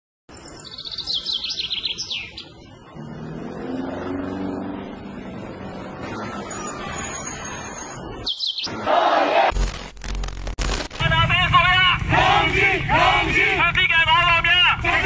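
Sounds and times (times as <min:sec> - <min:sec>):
bird chirping: 0:00.3 - 0:02.7, 0:06.5 - 0:08.8.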